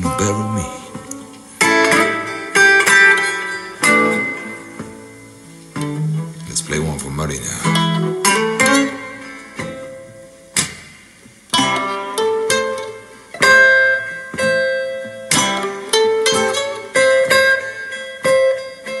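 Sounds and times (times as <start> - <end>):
blues guitar through loudspeaker: 0.0 - 19.0.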